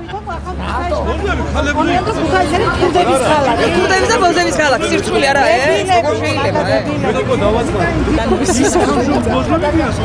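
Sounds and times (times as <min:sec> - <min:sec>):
people talking over each other: 0:00.0 - 0:10.0.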